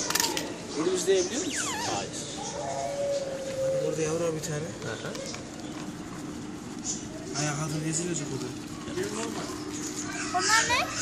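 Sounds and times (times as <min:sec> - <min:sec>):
steady faint hum: 0:00.0 - 0:11.0.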